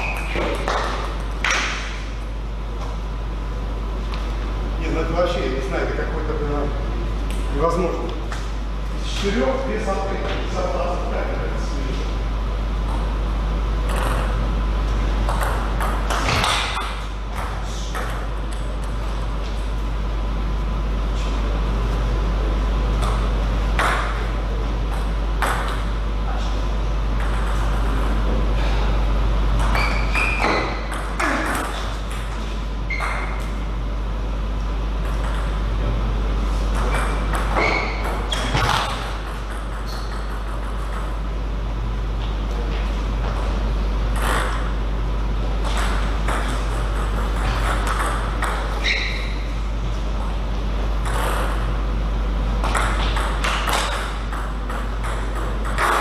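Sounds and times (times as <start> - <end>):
table tennis ball hits: 0.0 - 2.0, 13.8 - 14.4, 15.2 - 19.0, 23.0 - 24.3, 24.9 - 25.9, 29.6 - 32.3, 35.0 - 35.6, 36.7 - 41.2, 44.1 - 44.7, 45.6 - 49.4, 51.0 - 51.7, 52.6 - 56.0
steady low hum: 0.0 - 56.0.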